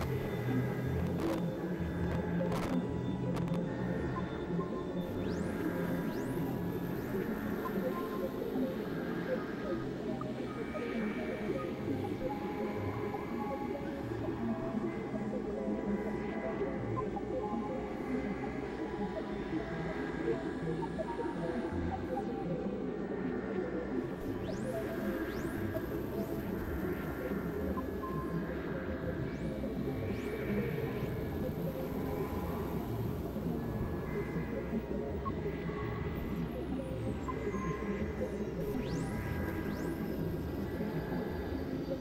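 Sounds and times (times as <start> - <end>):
layered synthesizer drones: 0.0 - 42.0.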